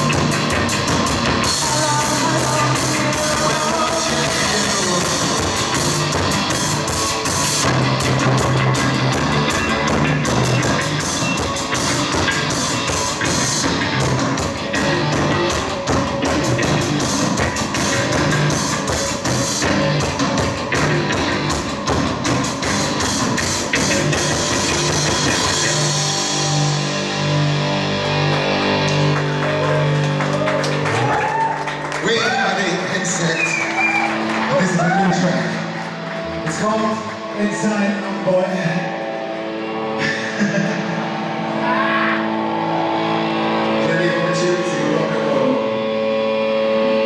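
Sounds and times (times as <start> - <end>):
drum kit: 0.0 - 32.1
pulsing bass line: 0.0 - 37.9
electric guitar: 0.0 - 47.0.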